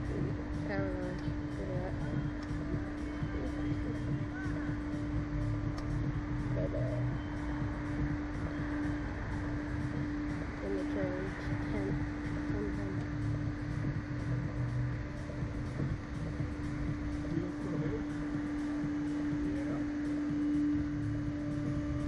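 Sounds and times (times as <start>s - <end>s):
low rumble: 0.0s - 22.0s
machine hum: 0.0s - 22.0s.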